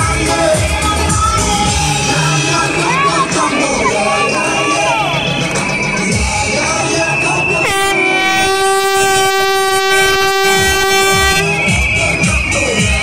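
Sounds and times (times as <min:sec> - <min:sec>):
carnival music: 0:00.0 - 0:13.0
crowd noise: 0:00.0 - 0:13.0
horn long blast: 0:07.6 - 0:11.6.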